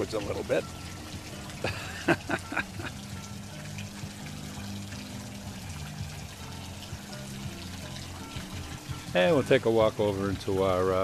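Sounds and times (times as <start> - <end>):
background music: 0.0 - 11.0
fountain water splashing: 0.0 - 11.0.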